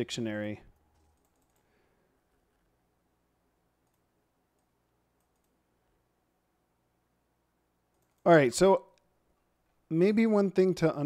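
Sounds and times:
soft clicks: 0.7s - 1.7s, 3.8s - 5.6s, 7.9s - 8.3s.

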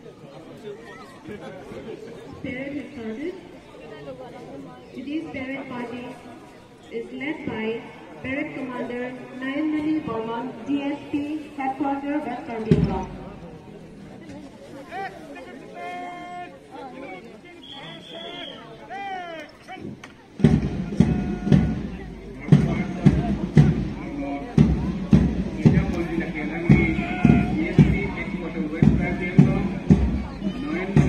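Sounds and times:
faint voices: 0.0s - 31.0s
bass drum beats: 12.7s - 13.4s, 20.4s - 31.0s
whistle-like tones: 17.6s - 18.7s
marching band playing: 20.4s - 31.0s.

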